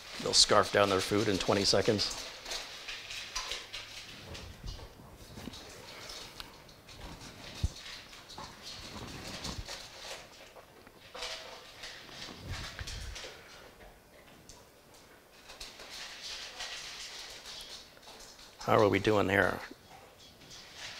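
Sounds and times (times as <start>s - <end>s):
dogs eating from bowls: 0.0s - 20.9s.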